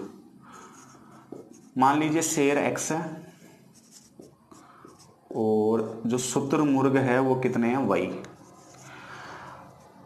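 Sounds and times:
marker writing on whiteboard: 0:00.0 - 0:06.4, 0:08.0 - 0:10.0.

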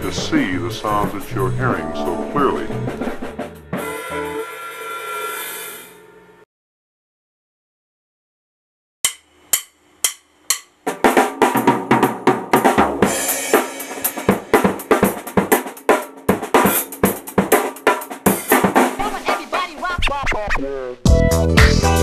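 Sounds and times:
drum kit played with sticks: 0:00.0 - 0:05.9, 0:09.0 - 0:22.0.

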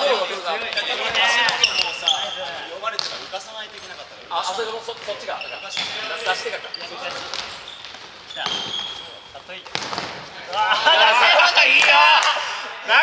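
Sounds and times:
sneakers squeaking: 0:00.0 - 0:11.3
ball kicked and bouncing: 0:02.8 - 0:03.4, 0:07.1 - 0:08.9, 0:09.6 - 0:10.4
players calling out: 0:04.8 - 0:13.0.

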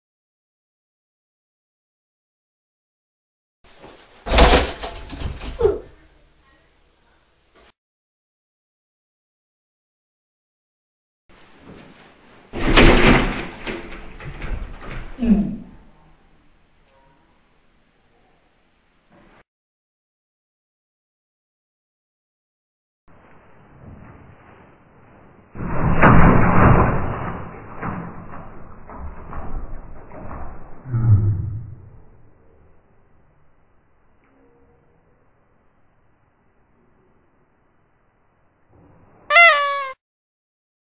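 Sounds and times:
person crashing into a mirror: 0:04.2 - 0:05.6, 0:12.6 - 0:14.0
cat meowing: 0:39.3 - 0:40.0.

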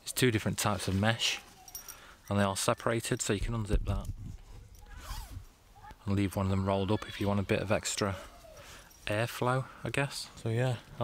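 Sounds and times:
tent fabric handling: 0:00.5 - 0:01.9, 0:04.3 - 0:05.5
tent zip being pulled: 0:04.3 - 0:05.5.

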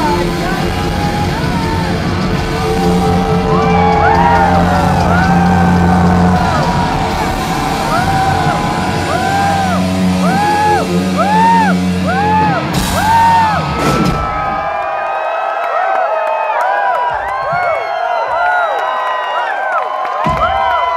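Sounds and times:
live rock band: 0:00.0 - 0:14.6
crowd whooping: 0:00.8 - 0:20.9
electric guitar pitch bends: 0:01.8 - 0:13.1.

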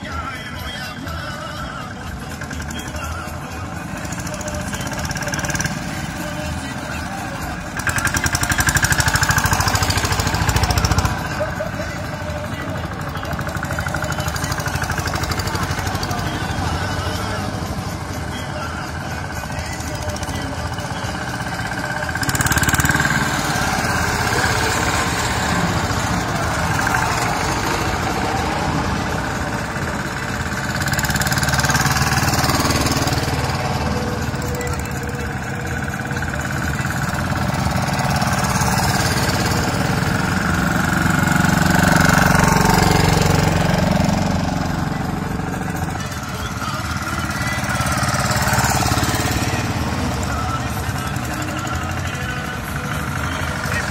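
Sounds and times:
crowd voices murmuring: 0:00.0 - 0:53.9
small engines chugging: 0:00.0 - 0:53.9.

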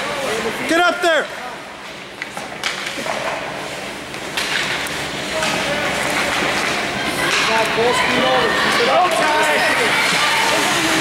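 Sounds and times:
hockey sticks and puck clacking: 0:01.8 - 0:07.8, 0:08.9 - 0:11.0
spectators' voices echoing: 0:04.9 - 0:11.0.

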